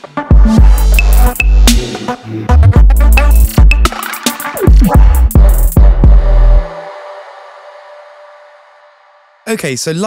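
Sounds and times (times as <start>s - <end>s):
electronic music: 0.0s - 10.0s.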